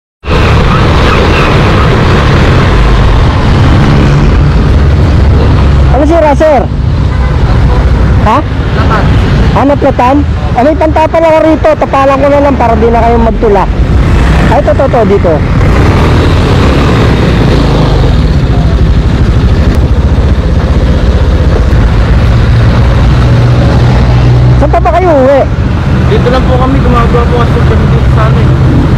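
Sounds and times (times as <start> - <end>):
steady rushing noise: 0.2 - 28.9
motorcycle engine running: 12.7 - 28.9
wind rumble on microphone: 13.5 - 24.7.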